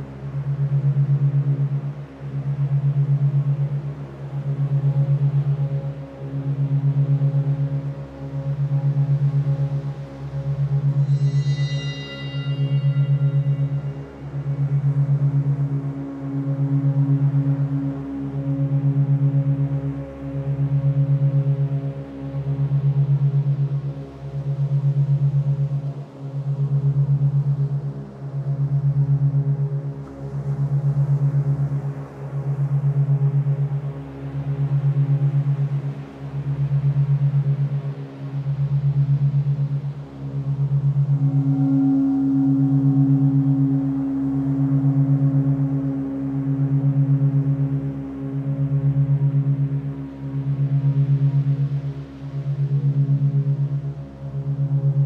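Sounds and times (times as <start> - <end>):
faint sustained humming tones: 0.0 - 55.0
low pulsing drone tone: 0.0 - 55.0
high steady tone: 10.9 - 14.1.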